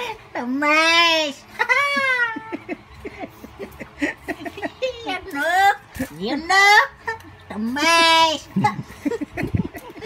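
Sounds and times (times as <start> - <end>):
child giggling: 1.4 - 5.2, 8.4 - 10.0.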